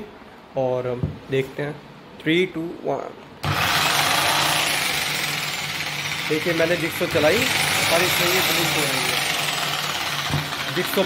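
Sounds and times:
electric jigsaw running: 3.4s - 11.0s.

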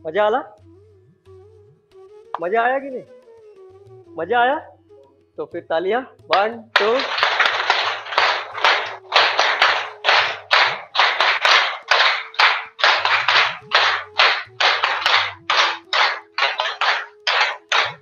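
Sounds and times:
hands clapping rhythmically: 6.3s - 18.0s.

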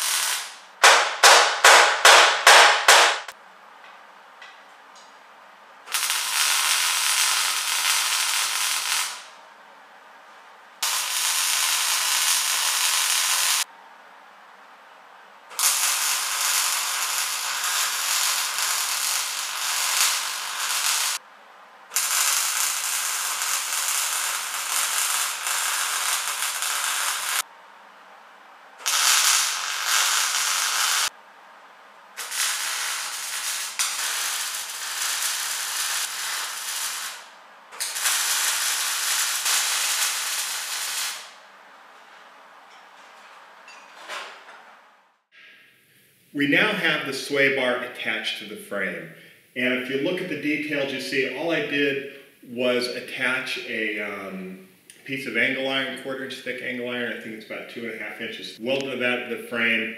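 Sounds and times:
welder arc crackling: 0.0s - 3.4s, 5.9s - 9.4s, 10.8s - 13.7s, 15.5s - 21.3s, 21.9s - 27.5s, 28.8s - 31.2s, 32.1s - 41.5s.

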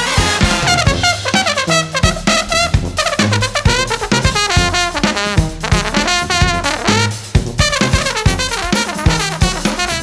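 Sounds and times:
bass line: 0.0s - 10.0s
brass band playing jazz-funk: 0.0s - 10.0s
drum kit hits: 0.0s - 10.0s.

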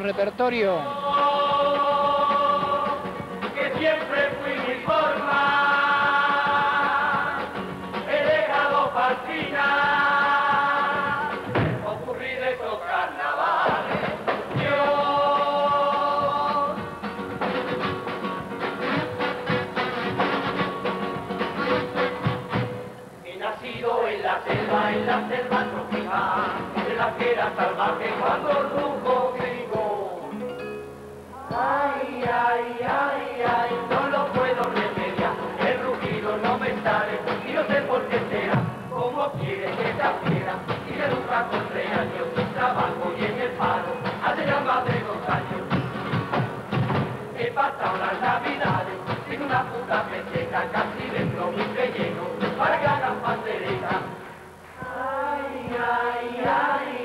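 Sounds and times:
steady drum beat: 0.0s - 12.2s, 13.4s - 22.8s, 32.2s - 47.2s
male chorus singing: 0.8s - 17.0s, 23.2s - 30.3s, 31.4s - 46.3s, 47.0s - 57.0s
instrumental accompaniment: 13.4s - 23.2s.

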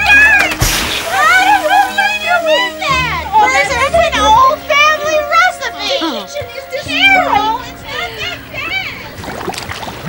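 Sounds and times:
background music: 0.0s - 10.0s
splash into water: 0.4s - 2.6s
women laughing and calling out: 1.0s - 9.2s.

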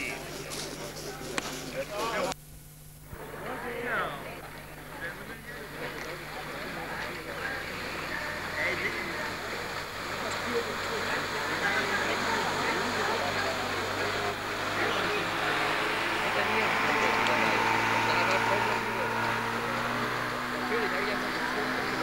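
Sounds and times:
indistinct voices talking: 0.0s - 2.4s, 3.1s - 22.0s
outdoor noise: 0.0s - 22.0s.

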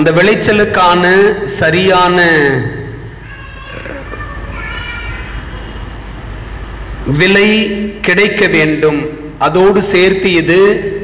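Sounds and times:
low rumble with hiss: 0.0s - 11.0s.

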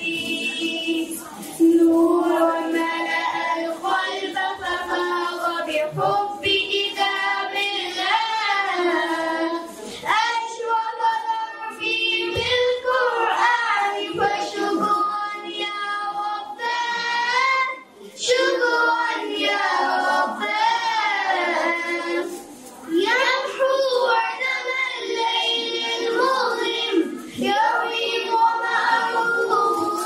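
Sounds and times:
children singing into microphones: 0.0s - 30.0s.

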